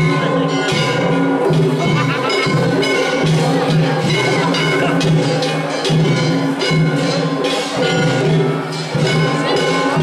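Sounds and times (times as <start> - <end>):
clanging bells: 0.0 - 10.0
taiko drums: 0.0 - 10.0.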